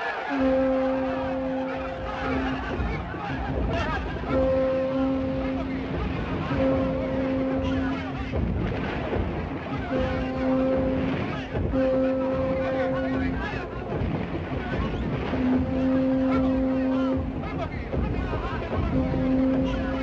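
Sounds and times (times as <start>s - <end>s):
people shouting: 0.0s - 20.0s
surf breaking: 0.0s - 20.0s
low horn blasts: 0.1s - 20.0s.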